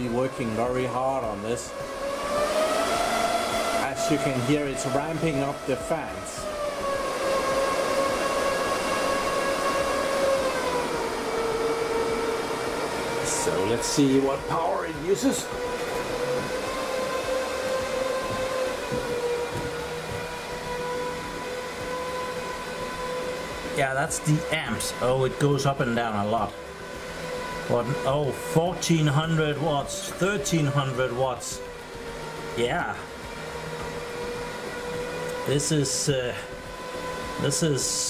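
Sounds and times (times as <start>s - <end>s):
fan whine: 0.0s - 38.0s
server cooling fans rushing: 0.0s - 38.0s.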